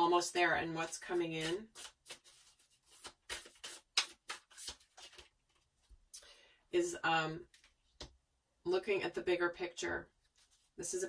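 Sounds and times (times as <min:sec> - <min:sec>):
cards being shuffled: 0:00.9 - 0:05.7.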